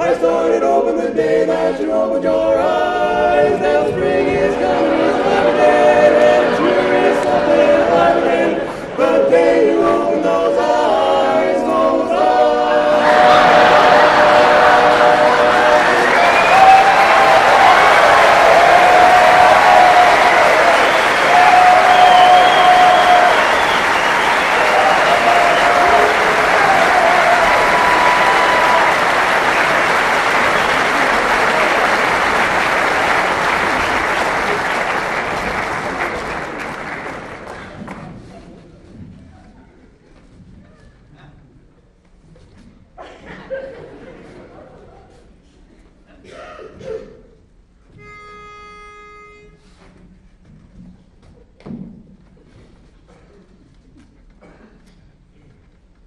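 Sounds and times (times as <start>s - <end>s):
quartet singing in harmony: 0.0s - 34.3s
audience applause: 13.0s - 38.3s
whistling: 16.0s - 17.1s, 20.1s - 26.2s, 30.4s - 30.9s.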